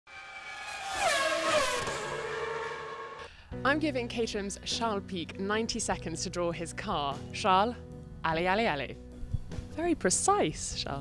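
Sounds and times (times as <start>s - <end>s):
electronic tone gliding down: 0.1s - 3.3s.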